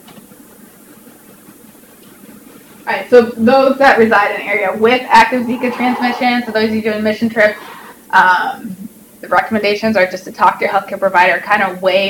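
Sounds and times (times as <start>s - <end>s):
low room tone hum and hiss: 0.0s - 12.0s.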